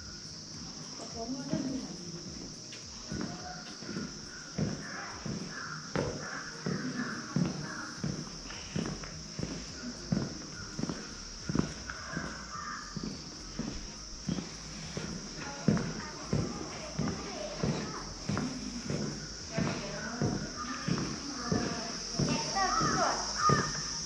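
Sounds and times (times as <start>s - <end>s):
footsteps on tiled floor: 0.0s - 24.0s
steady high hiss: 0.0s - 24.0s.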